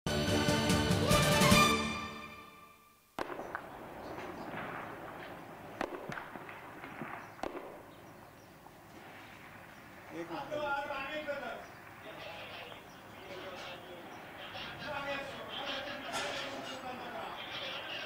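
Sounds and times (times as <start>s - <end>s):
outdoor background rush: 3.1s - 18.0s
distant gunshots: 3.2s - 16.7s.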